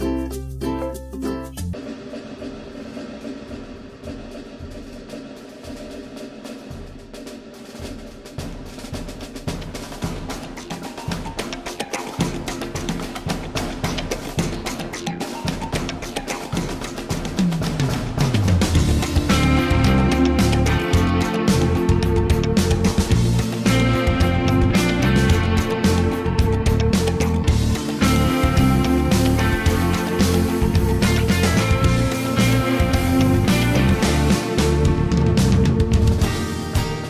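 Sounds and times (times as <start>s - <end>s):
music with steady drum beat: 0.0s - 37.0s.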